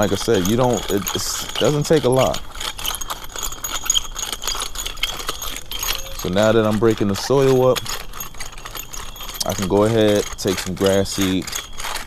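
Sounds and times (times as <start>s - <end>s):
metal tines rattling and clinking: 0.0s - 12.0s.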